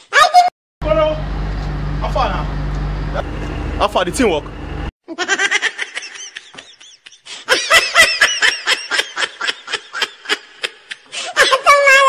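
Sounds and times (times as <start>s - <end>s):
vehicle engine idling: 0.8s - 4.9s
laughter: 5.1s - 11.8s.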